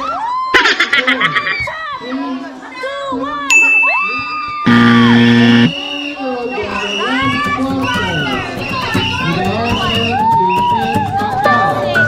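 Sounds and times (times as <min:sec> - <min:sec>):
spectators shouting and cheering: 0:03.8 - 0:12.0
loud buzzer: 0:04.7 - 0:05.7
steady high tone: 0:04.7 - 0:05.7.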